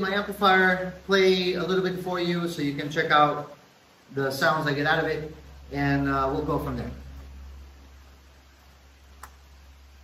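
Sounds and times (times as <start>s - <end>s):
low hum: 4.7s - 10.0s
sharp click: 9.2s - 9.4s.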